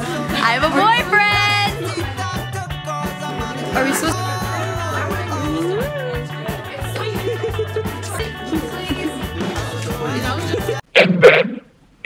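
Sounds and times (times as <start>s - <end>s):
background music with guitar: 0.0s - 10.8s.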